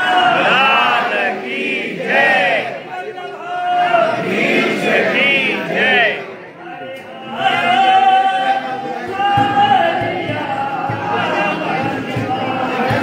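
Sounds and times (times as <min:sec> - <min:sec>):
crowd chanting: 0:00.0 - 0:13.0.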